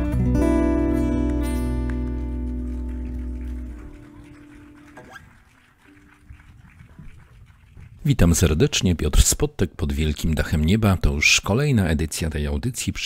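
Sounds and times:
acoustic guitar chord ringing: 0:00.0 - 0:03.4.

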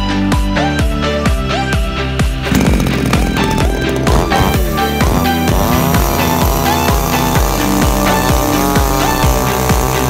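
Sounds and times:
chainsaw engine running: 0:02.4 - 0:10.0
electronic dance music: 0:02.5 - 0:10.0.

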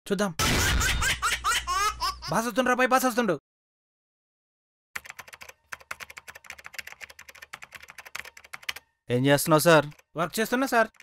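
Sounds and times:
typing on computer keyboard: 0:05.0 - 0:08.9, 0:09.8 - 0:11.0.

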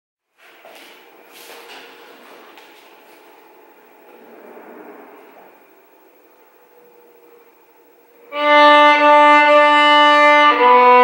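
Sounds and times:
room hiss: 0:00.3 - 0:11.0.

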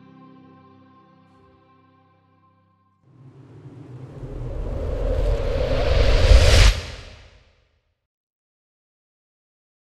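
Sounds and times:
deep rumble: 0:03.1 - 0:07.4
rising hiss: 0:03.2 - 0:07.3.

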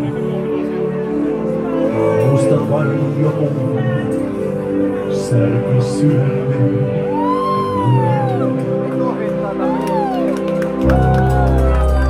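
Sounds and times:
live band sustained chord: 0:00.0 - 0:09.6.

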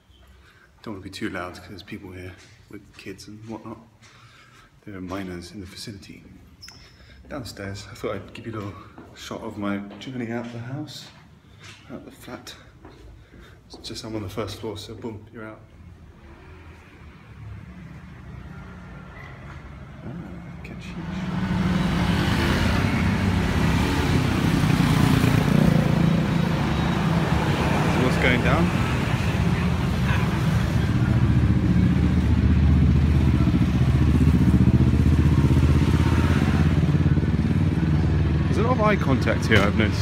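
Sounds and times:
distant road traffic rumble: 0:00.0 - 0:40.0
motorbike engine passing: 0:16.1 - 0:40.0.

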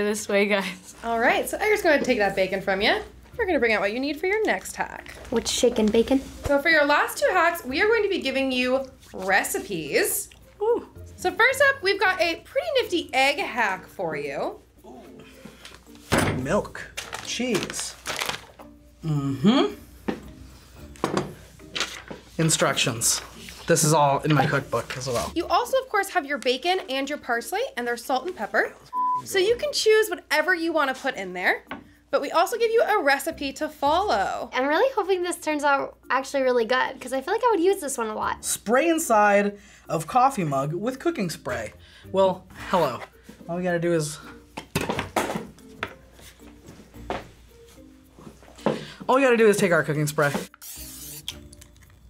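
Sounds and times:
light background music: 0:00.0 - 0:52.0
kitchen items set down on table: 0:21.0 - 0:21.4, 0:44.6 - 0:46.0.

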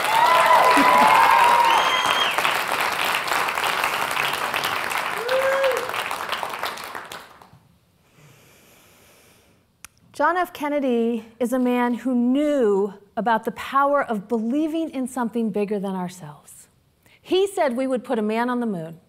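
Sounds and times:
cheers and whoops: 0:00.0 - 0:02.6, 0:05.0 - 0:06.2
audience applauding: 0:00.0 - 0:07.5.

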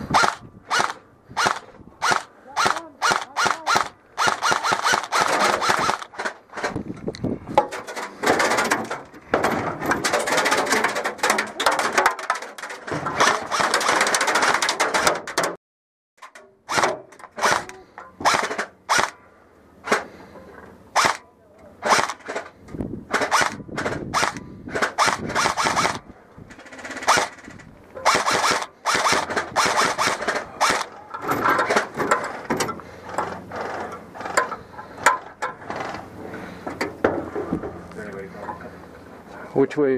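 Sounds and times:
airsoft rifle shots: 0:00.1 - 0:06.3, 0:13.2 - 0:15.0, 0:16.6 - 0:19.2, 0:21.0 - 0:21.2, 0:21.8 - 0:22.4, 0:23.1 - 0:26.0, 0:26.7 - 0:31.0.

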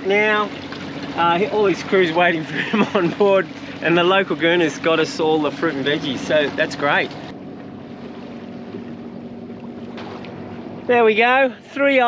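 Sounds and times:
low drone of boat: 0:00.0 - 0:12.0
water noise: 0:00.0 - 0:12.0
wind: 0:00.0 - 0:12.0.

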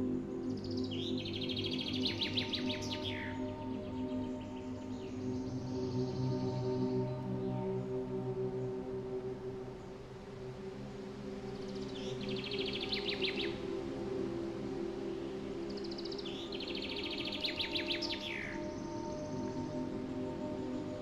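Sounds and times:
ambient music with low tones: 0:00.0 - 0:21.0.

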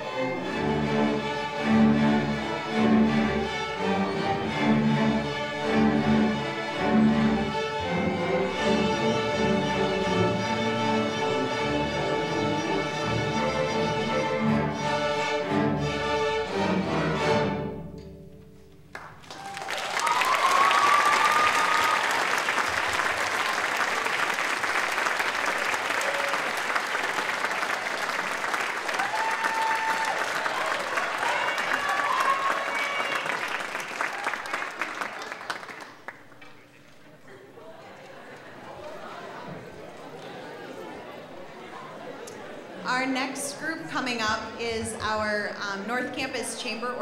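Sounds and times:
string orchestra chords: 0:00.0 - 0:18.9, 0:39.0 - 0:47.0
audience cheering: 0:19.2 - 0:36.0.

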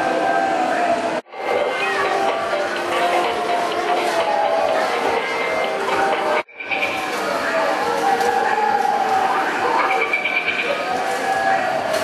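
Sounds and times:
electronic game machine tones: 0:01.4 - 0:07.8.

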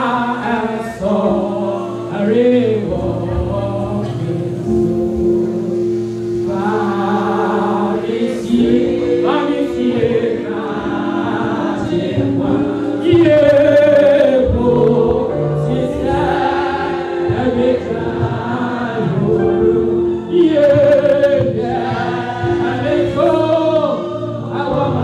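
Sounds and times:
group gospel singing: 0:00.0 - 0:25.0.

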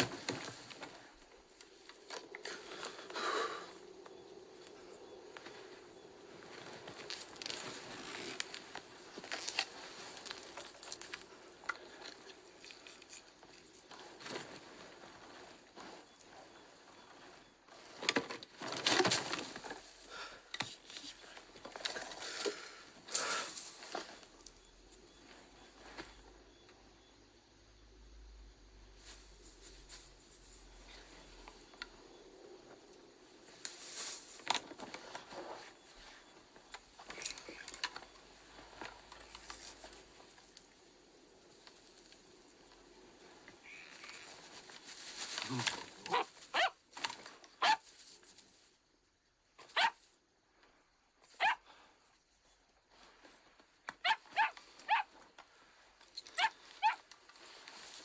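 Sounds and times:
dry reeds rustling and crackling: 0:03.9 - 0:20.2, 0:33.4 - 0:40.8, 0:41.5 - 0:48.6, 0:56.6 - 0:58.0.

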